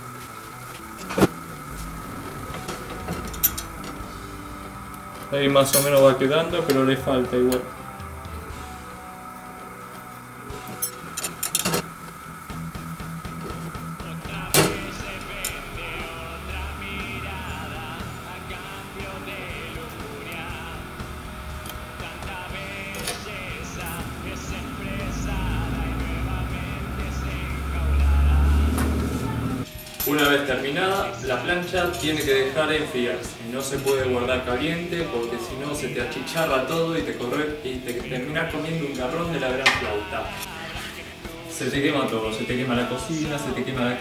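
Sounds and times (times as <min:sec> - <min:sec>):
background music: 0:00.0 - 0:44.0
low rumble: 0:01.3 - 0:05.5, 0:12.3 - 0:29.6.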